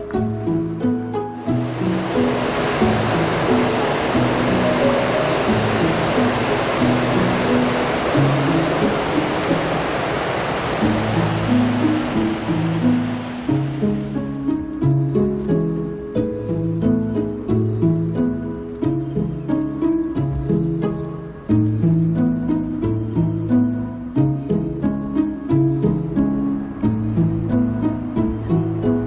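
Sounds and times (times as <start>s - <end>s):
plucked and bowed string music: 0.0s - 9.7s, 10.8s - 29.0s
water rushing over a weir: 1.4s - 14.5s.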